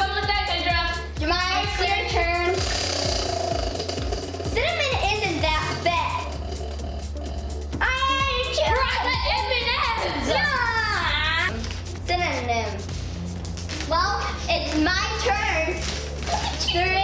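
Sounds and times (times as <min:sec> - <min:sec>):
pop music with vocal: 0:00.0 - 0:11.8.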